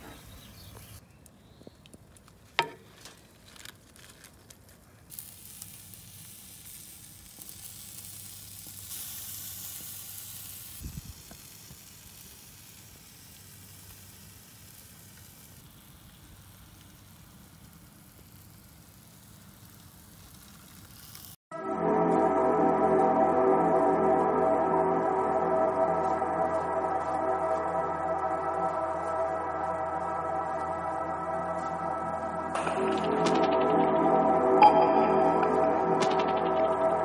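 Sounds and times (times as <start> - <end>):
corn sizzling on a grill: 2.9 - 21.4.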